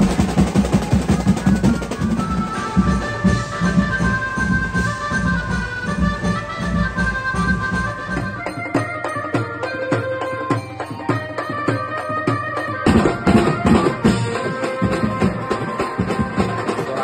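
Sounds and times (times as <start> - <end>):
fast drum beat: 0.0 - 8.4
high held melody: 0.0 - 17.0.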